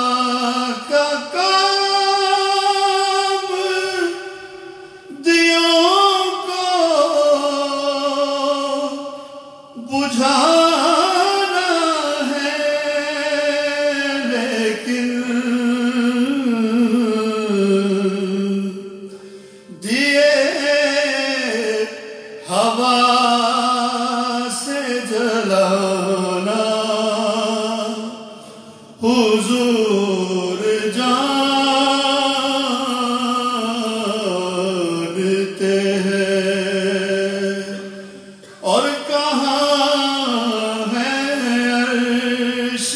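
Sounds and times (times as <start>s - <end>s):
man singing devotional hymn: 0.0s - 42.9s.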